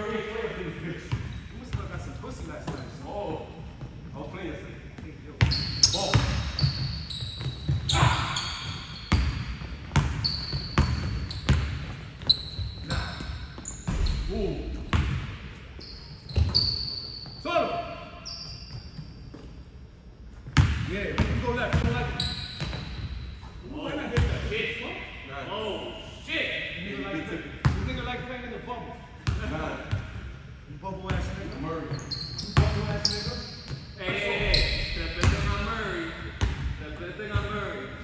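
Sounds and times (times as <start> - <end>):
men's voices: 34.0 - 38.0.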